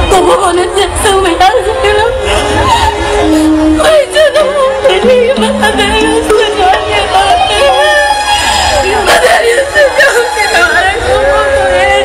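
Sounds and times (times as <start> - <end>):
instrumental accompaniment: 3.1 - 8.4
person singing ornamented melody: 3.8 - 7.8.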